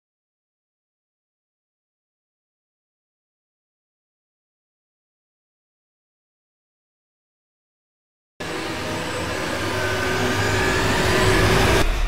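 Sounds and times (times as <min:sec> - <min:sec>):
loud noisy rush: 0:08.4 - 0:12.0
low rumble: 0:10.9 - 0:12.0.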